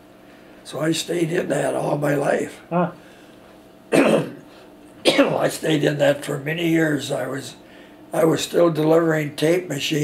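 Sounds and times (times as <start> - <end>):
man coughing: 3.9 - 5.5.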